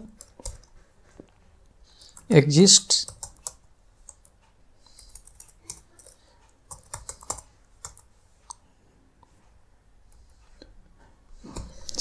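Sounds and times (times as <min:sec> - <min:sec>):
typing on computer keyboard: 0:00.0 - 0:00.8, 0:03.0 - 0:08.6.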